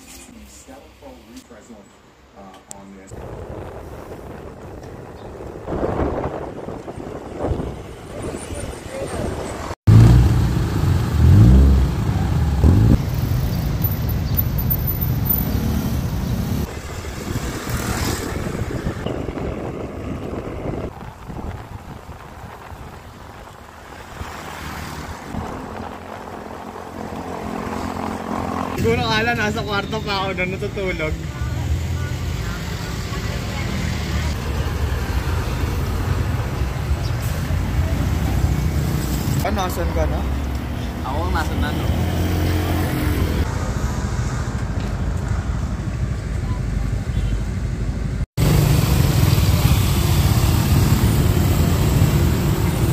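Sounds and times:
street traffic: 0.0 - 52.9
engine revving: 9.8 - 13.8, 38.4 - 43.8, 48.4 - 52.9.

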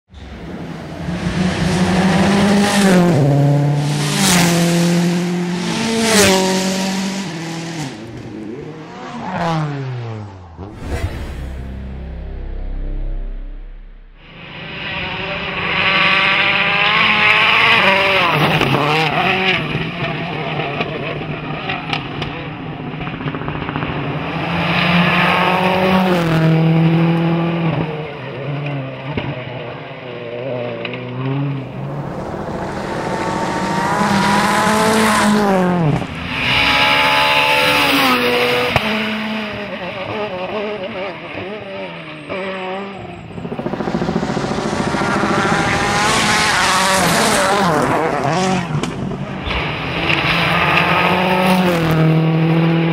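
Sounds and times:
rally car engines passing: 0.2 - 52.9.

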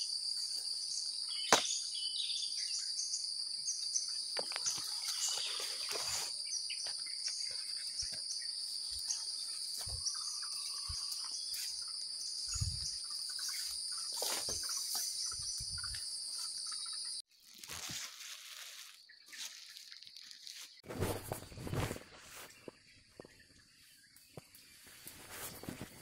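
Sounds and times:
high-pitched insect chorus: 0.0 - 17.2
rustling: 17.4 - 22.7.

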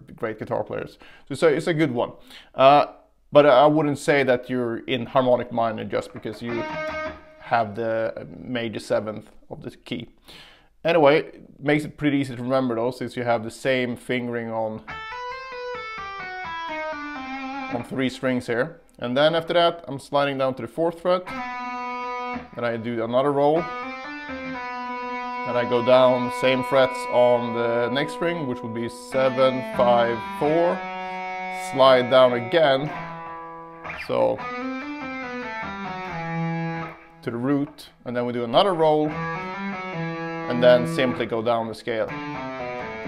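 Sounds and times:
electric guitar legato run: 6.1 - 7.5, 14.9 - 17.9, 23.5 - 37.2, 39.0 - 41.3, 42.1 - 43.0.

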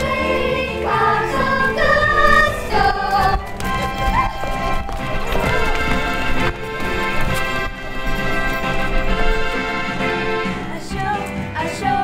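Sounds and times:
young voices singing: 0.0 - 4.4, 10.2 - 12.0
instrumental accompaniment: 0.0 - 12.0.

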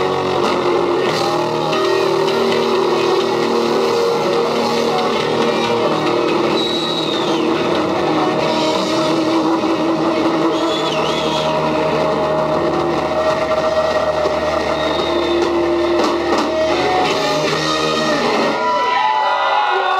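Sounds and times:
squealing guitar glides: 0.0 - 19.0
heavy metal band playing: 0.0 - 19.9.

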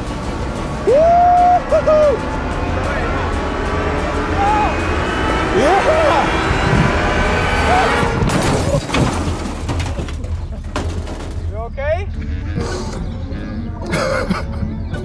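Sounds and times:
background music: 0.0 - 8.3, 11.4 - 15.0
man yelping and laughing: 0.9 - 2.2.

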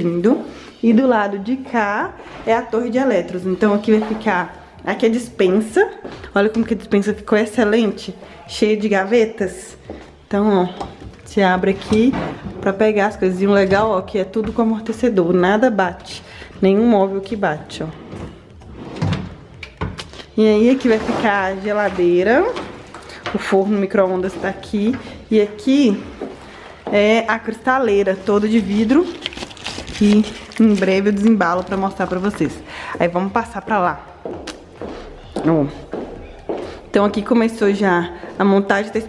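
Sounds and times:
footsteps on tiled floor: 0.0 - 39.0
drawers sliding shut: 18.0 - 20.0.

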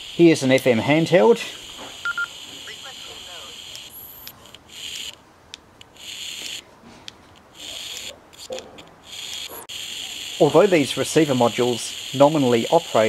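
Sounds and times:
radio receiver hiss: 0.0 - 5.2, 9.1 - 13.0.

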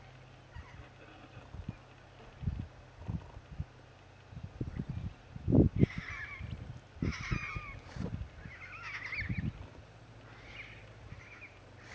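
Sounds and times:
cockatoo wavering calls: 0.5 - 1.0, 5.8 - 11.9.

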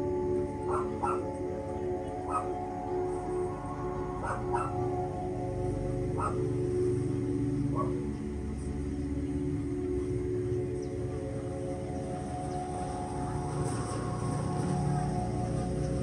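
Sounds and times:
calm ambient music: 0.0 - 16.0
dog yipping: 0.7 - 1.2, 2.3 - 2.5, 4.2 - 4.8.

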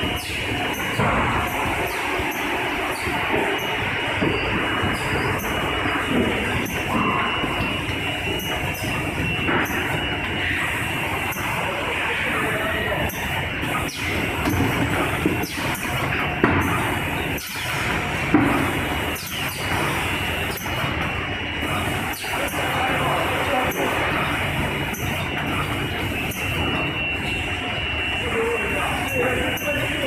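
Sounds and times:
high machine whine: 0.0 - 30.0
packing machine running: 0.0 - 30.0.

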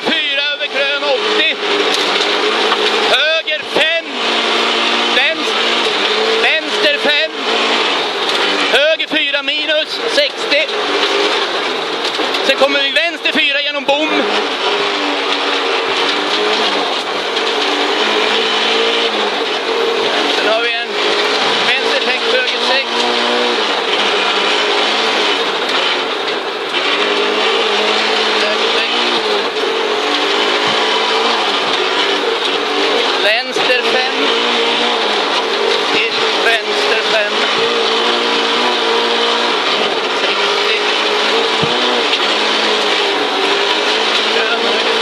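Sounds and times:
car engine revving: 0.0 - 45.0
sharp knocks: 41.4 - 42.2.

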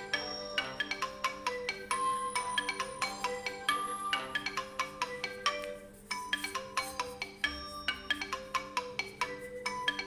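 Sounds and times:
phone ringtone melody: 0.0 - 10.0.

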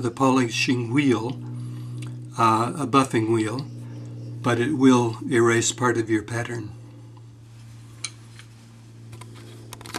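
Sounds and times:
low hum: 0.0 - 9.9.

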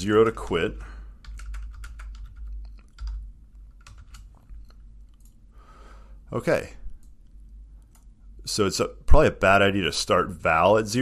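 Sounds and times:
low steady hum: 0.0 - 11.0
computer keyboard typing: 1.2 - 5.4.

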